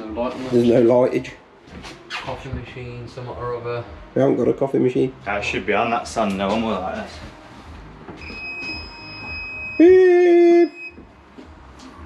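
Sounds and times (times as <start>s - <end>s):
high-pitched electronic tone: 8.2s - 11.0s.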